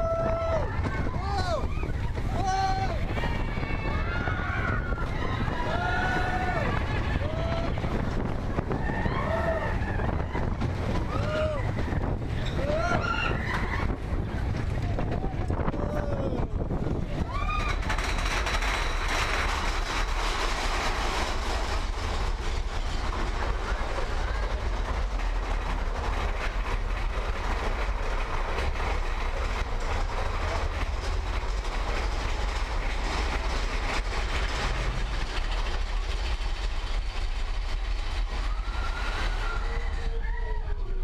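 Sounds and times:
roller coaster cars rumbling on track: 0.0s - 41.0s
wind rushing over microphone: 0.0s - 41.0s.

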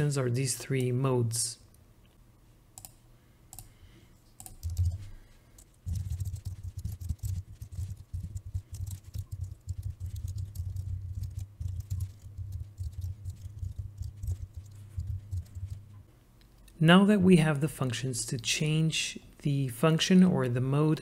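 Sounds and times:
computer keyboard typing: 4.4s - 16.0s.

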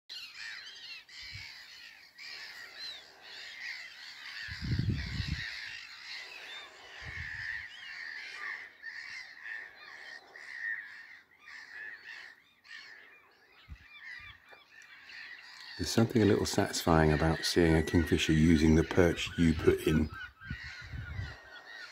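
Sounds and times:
small birds chirping and singing: 0.1s - 21.9s.

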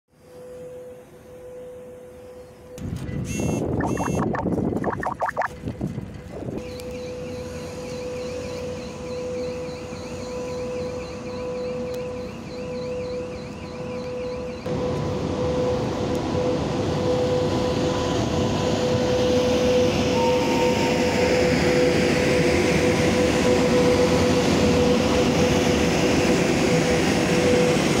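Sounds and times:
steady high whine: 3.6s - 5.7s.

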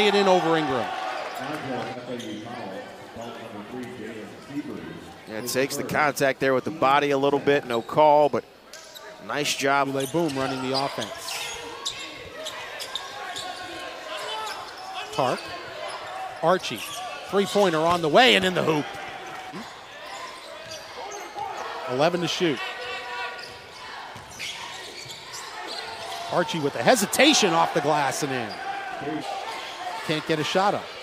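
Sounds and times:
sneakers squeaking on hardwood: 9.9s - 29.9s.

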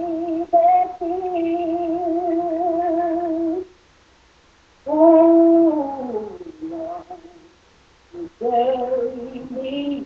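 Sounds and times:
woman singing a cappella: 0.0s - 3.7s, 4.9s - 7.5s, 8.2s - 10.0s.

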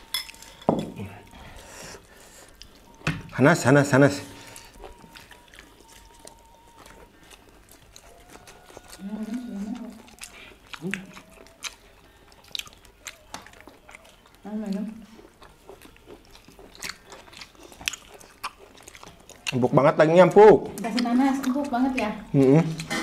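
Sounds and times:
chewing and lip-smacking: 2.0s - 23.0s.

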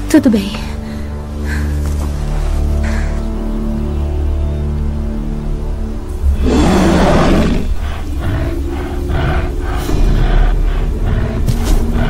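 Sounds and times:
tense film score: 0.0s - 12.0s
rasping growls: 6.1s - 12.0s
bear roaring: 6.2s - 12.0s.

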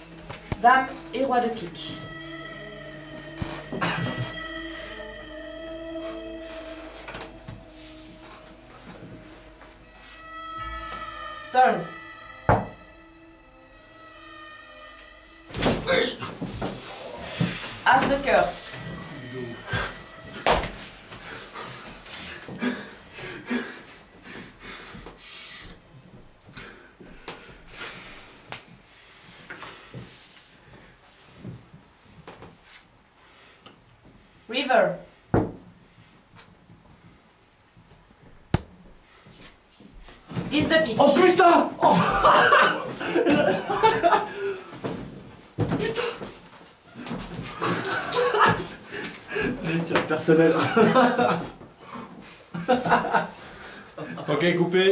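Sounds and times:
men talking: 18.9s - 20.0s, 49.3s - 51.5s, 54.0s - 54.9s
men laughing: 41.8s - 44.8s, 47.0s - 49.8s, 50.4s - 54.4s.

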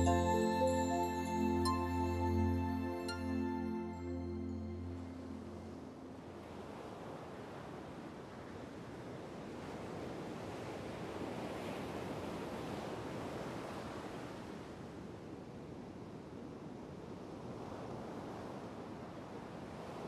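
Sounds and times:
music: 0.0s - 5.9s.

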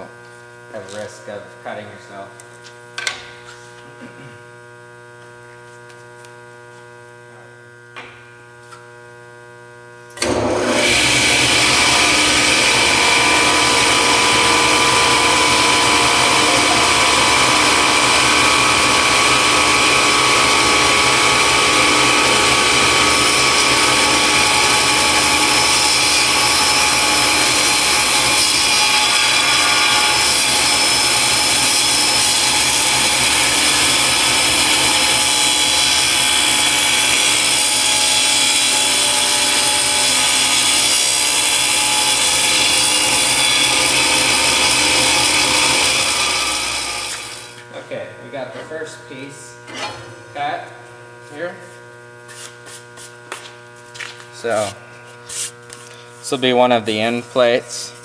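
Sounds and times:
table saw cutting acrylic: 10.1s - 48.0s.

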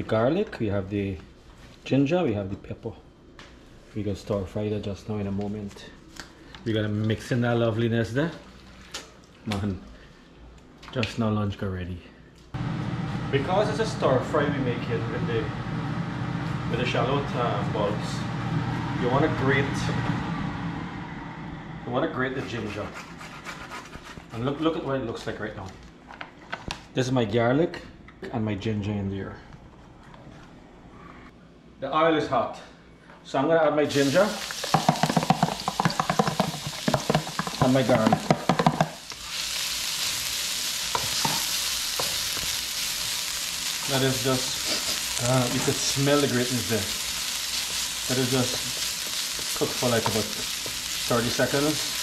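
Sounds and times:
low background hum: 0.0s - 52.0s
faint hiss: 33.8s - 41.6s
ginger and garlic sizzling in oil: 33.8s - 52.0s
wooden spoon knocks: 34.7s - 39.0s.

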